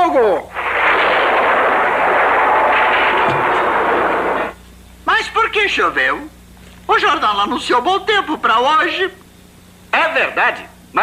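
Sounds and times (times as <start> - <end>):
heavy rain rushing hiss: 0.5 - 4.6.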